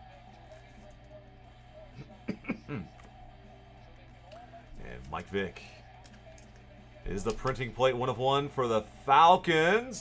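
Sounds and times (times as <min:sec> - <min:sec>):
faint background music: 0:00.0 - 0:10.0.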